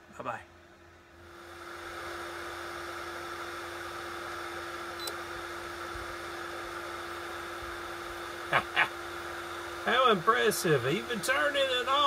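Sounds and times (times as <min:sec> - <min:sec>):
heater fan humming: 0:00.0 - 0:12.0.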